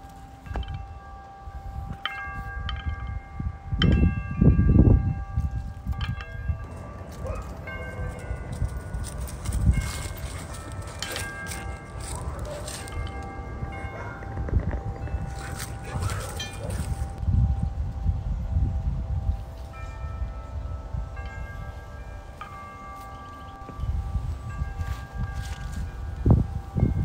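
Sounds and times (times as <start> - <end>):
wind chimes ringing: 0.0 - 27.0
wind rumble on microphone: 0.0 - 27.0.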